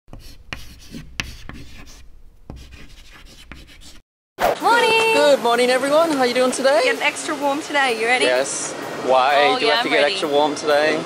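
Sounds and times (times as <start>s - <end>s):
pen writing on paper: 0.1s - 4.0s.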